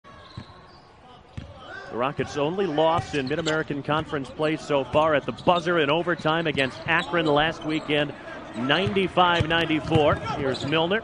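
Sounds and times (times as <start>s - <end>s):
man speaking: 1.7s - 11.0s.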